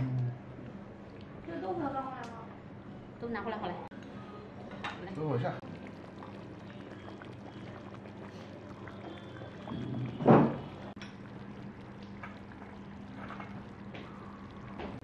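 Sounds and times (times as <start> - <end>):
low steady hum: 0.0 - 15.0
broth bubbling in a pot: 5.0 - 15.0.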